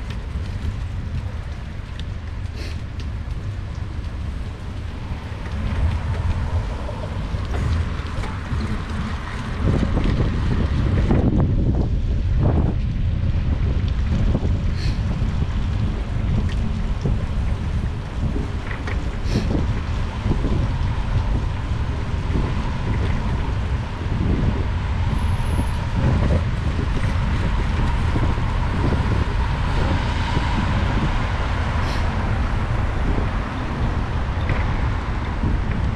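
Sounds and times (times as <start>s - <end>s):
traffic hiss on wet roads: 0.0s - 35.9s
wind buffeting microphone: 0.0s - 35.9s.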